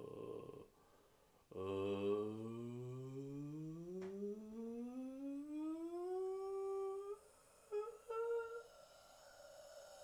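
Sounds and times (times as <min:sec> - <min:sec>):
person humming: 0:00.0 - 0:00.7, 0:01.5 - 0:10.0.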